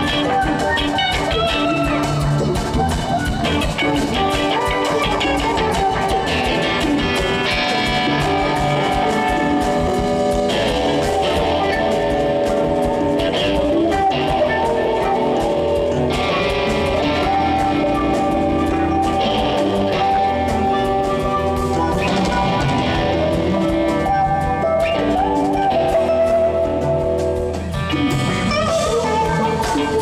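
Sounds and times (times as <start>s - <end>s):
bass guitar: 0.0s - 30.0s
drum kit: 0.0s - 30.0s
electric guitar: 0.0s - 30.0s.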